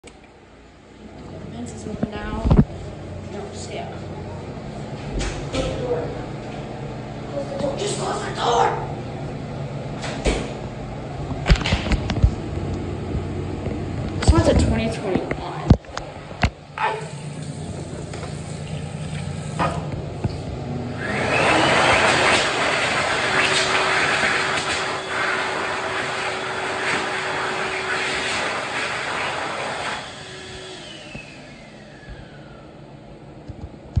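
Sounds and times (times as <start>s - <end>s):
hand dryer blowing air: 16.8s - 20.0s, 20.8s - 33.0s
motor whining down: 20.7s - 33.1s.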